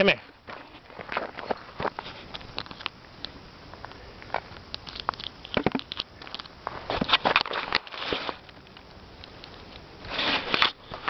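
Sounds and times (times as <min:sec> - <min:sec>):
grass rustling and crackling: 0:00.0 - 0:11.0.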